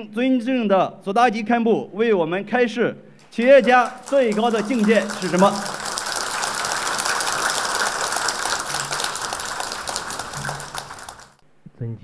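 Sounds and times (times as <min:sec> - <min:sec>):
audience applauding: 0:03.2 - 0:11.4.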